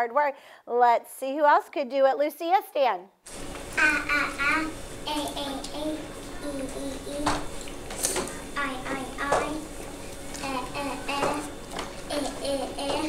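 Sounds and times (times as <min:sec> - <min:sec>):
child saying vowel sounds: 0:03.8 - 0:07.4, 0:10.4 - 0:11.5, 0:12.1 - 0:13.0.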